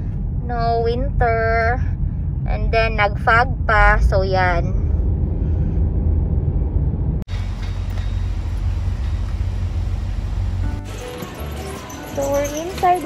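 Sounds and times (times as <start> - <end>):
road rumble inside car: 0.0 - 10.8
hissy outdoor ambience: 7.3 - 13.0.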